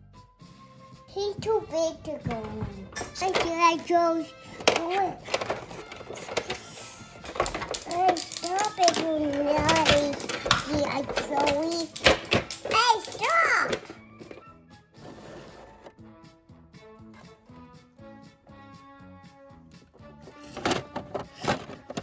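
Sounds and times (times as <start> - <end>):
quiet background music: 0.0 - 22.0
young child's voice: 1.1 - 5.5, 7.8 - 14.0
plastic toy parts clicking: 4.5 - 14.4, 20.4 - 22.0.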